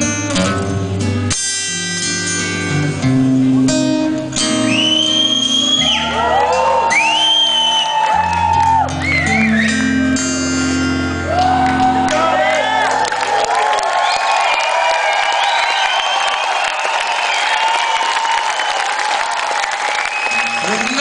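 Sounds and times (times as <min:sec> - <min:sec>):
rock band playing: 0:00.0 - 0:13.1
audience cheering and singing: 0:04.7 - 0:21.0.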